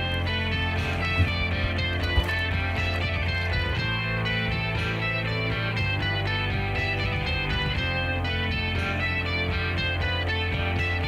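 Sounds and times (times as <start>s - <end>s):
low bass note: 0.0s - 10.8s
guitar music: 0.0s - 11.0s.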